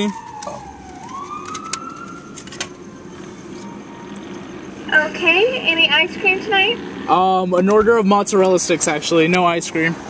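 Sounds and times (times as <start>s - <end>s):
siren-like wailing tone: 0.0s - 7.0s.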